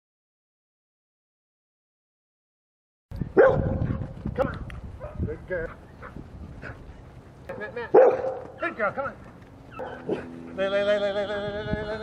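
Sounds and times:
dog barking: 3.4s - 6.8s, 7.5s - 8.6s, 9.7s - 10.3s.

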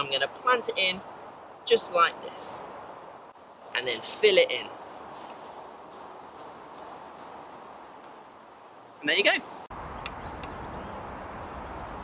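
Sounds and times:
steady background hiss: 0.0s - 12.0s
hands scraping soil: 3.7s - 7.4s.

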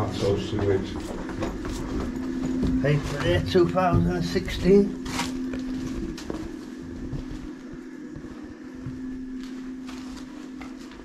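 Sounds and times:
steady low hum: 0.0s - 11.0s
footsteps on debris: 0.6s - 11.0s.

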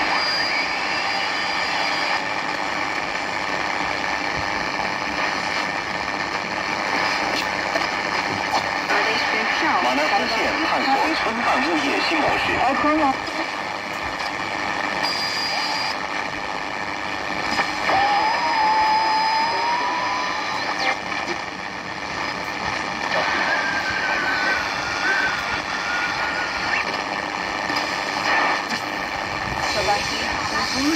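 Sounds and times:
pitch-sliding radio whistles: 0.0s - 2.5s, 14.9s - 16.0s, 17.5s - 21.0s, 23.1s - 27.0s
radio static rush: 0.0s - 30.9s.

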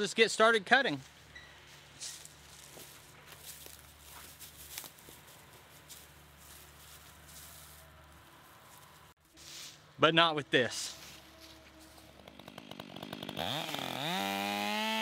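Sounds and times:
footsteps in dry leaves: 1.0s - 10.0s, 10.8s - 12.2s.

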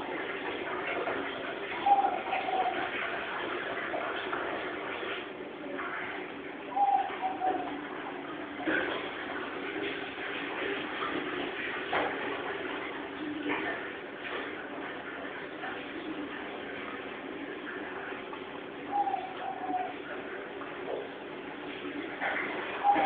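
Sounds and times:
dove-like cooing calls: 1.7s - 4.2s, 6.7s - 9.3s, 18.8s - 20.4s, 22.2s - 23.0s.

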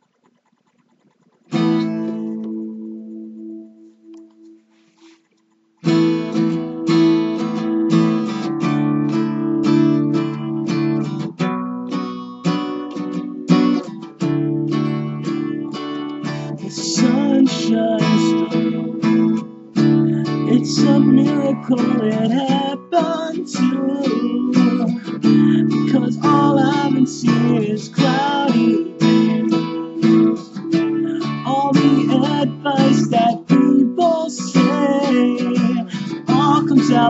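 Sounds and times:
acoustic guitar strumming: 0.0s - 37.0s.

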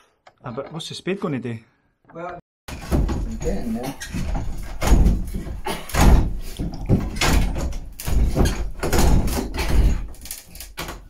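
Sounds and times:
wooden door knocking and rattling: 2.7s - 11.0s.

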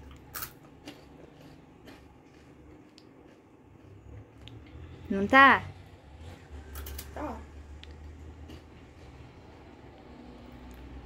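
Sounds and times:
biting crunchy biscuit: 0.0s - 4.6s
faint chewing with crunches: 0.0s - 5.1s, 6.2s - 11.0s.

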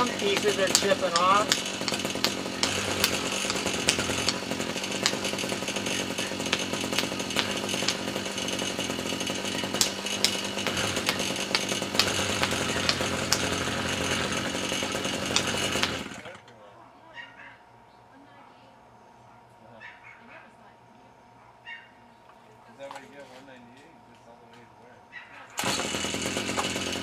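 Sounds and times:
test light knocking on concrete: 0.0s - 5.6s, 6.2s - 8.2s, 9.4s - 13.7s
string trimmer engine running: 0.0s - 16.5s, 25.6s - 27.0s.

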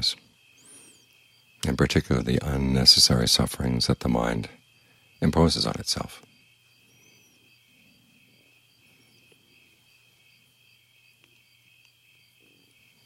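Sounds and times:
crickets chirring: 0.0s - 13.0s.

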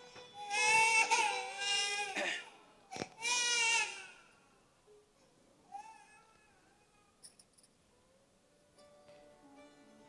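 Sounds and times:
faint high crying voice: 5.7s - 7.2s.

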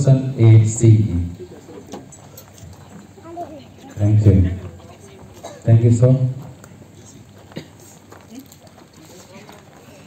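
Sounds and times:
outdoor gathering background: 0.0s - 10.0s.

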